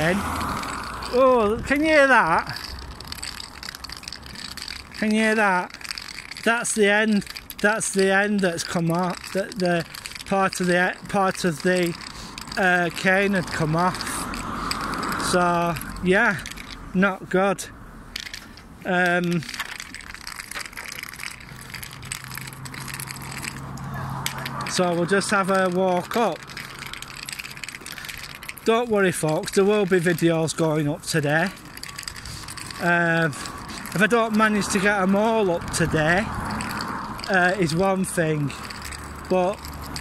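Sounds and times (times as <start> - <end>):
cane tip clicking on pavement: 0.0 - 17.0, 18.1 - 40.0.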